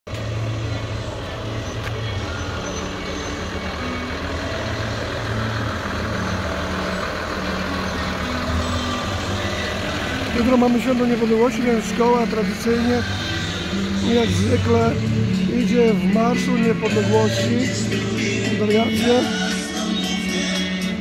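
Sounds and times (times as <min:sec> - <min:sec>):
diesel truck engine running: 0:00.1 - 0:21.0.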